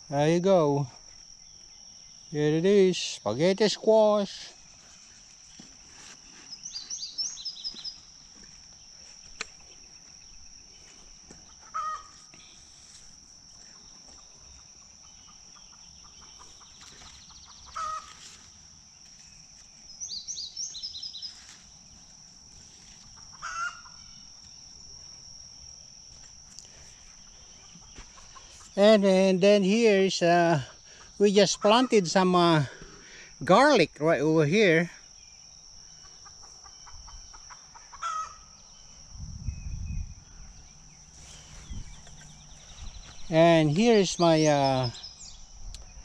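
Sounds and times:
insect drone: 0.0s - 46.0s
birds calling: 6.2s - 12.7s, 13.6s - 18.7s, 19.4s - 21.6s, 23.0s - 24.9s, 26.6s - 33.4s, 35.2s - 46.0s
short low bird calls: 11.5s - 12.3s, 17.5s - 18.2s.

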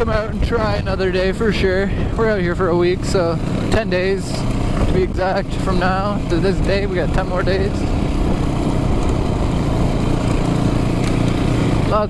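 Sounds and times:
wind noise: 0.0s - 3.1s
dirt bike engine running: 0.0s - 12.0s.

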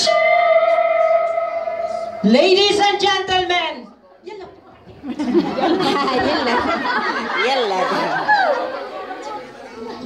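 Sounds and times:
people chattering in a hall: 0.0s - 10.0s.

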